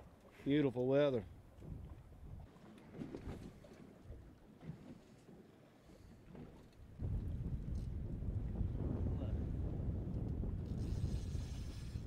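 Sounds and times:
wind rumbling on microphone: 0:01.5 - 0:02.5, 0:06.8 - 0:12.0.

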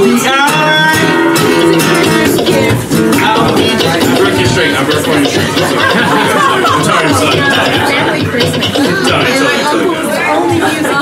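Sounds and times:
bar-room chatter: 0:00.0 - 0:11.0.

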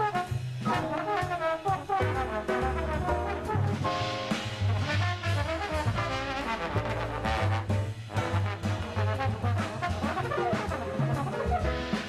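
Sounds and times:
jazz quartet playing: 0:00.0 - 0:12.0
trombone: 0:00.0 - 0:12.0.

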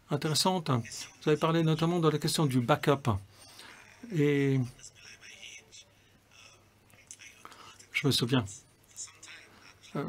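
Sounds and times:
faint soft speech: 0:03.8 - 0:10.0.

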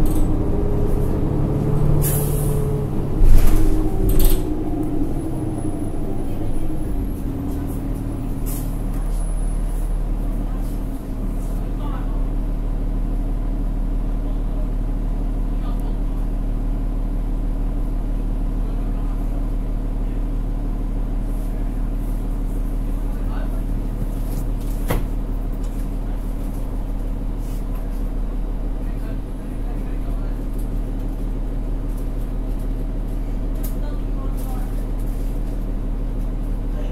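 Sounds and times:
bus diesel engine humming: 0:00.0 - 0:36.9.

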